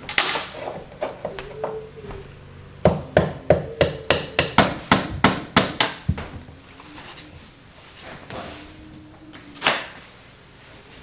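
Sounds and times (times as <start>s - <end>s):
hammer striking: 2.8s - 6.2s.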